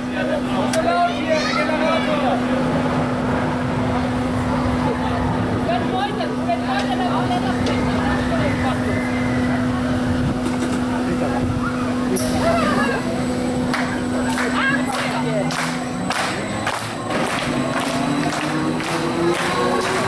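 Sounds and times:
faint voices: 0.0s - 20.0s
ride machinery humming: 0.0s - 20.0s.

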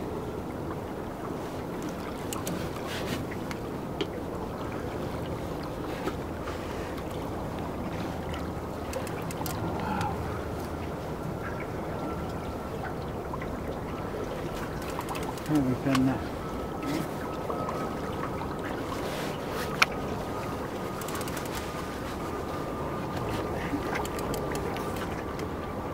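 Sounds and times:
river water: 0.0s - 25.9s
wind: 0.0s - 25.9s.

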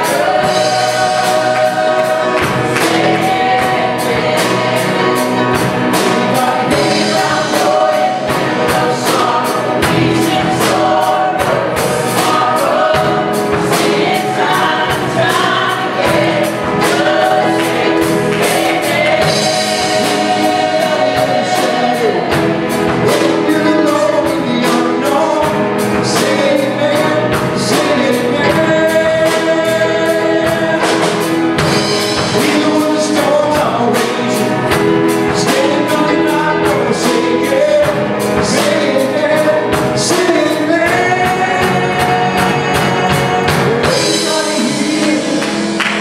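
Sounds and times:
choir singing gospel: 0.0s - 46.0s
drums steady beat: 0.0s - 46.0s
live band: 0.0s - 46.0s.

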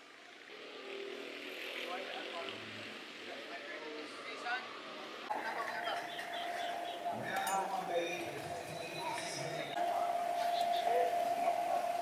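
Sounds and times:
racing kart engines droning: 0.0s - 12.0s
voices talking: 1.7s - 12.0s.

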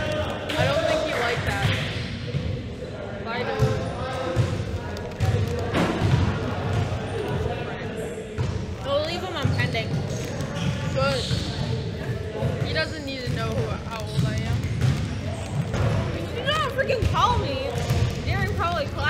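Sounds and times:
basketballs dribbled on gym floor: 0.0s - 2.7s, 3.4s - 7.7s, 8.3s - 19.0s
background chatter: 0.0s - 19.0s.

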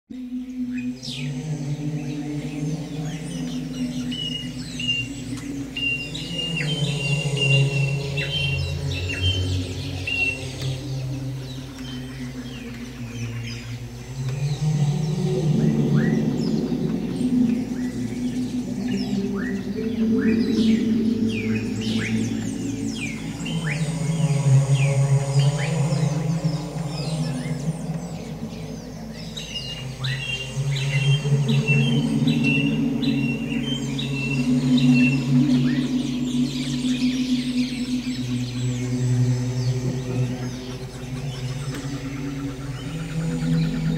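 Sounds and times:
ambient drone music: 0.1s - 43.9s.

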